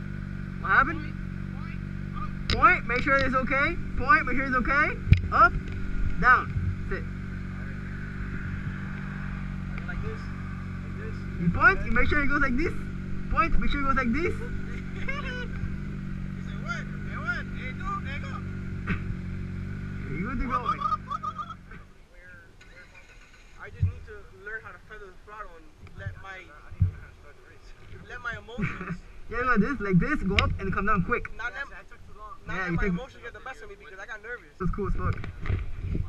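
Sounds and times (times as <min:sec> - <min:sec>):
motorcycle engine idling: 0:00.0 - 0:34.1
distant voices shouting: 0:00.6 - 0:18.7.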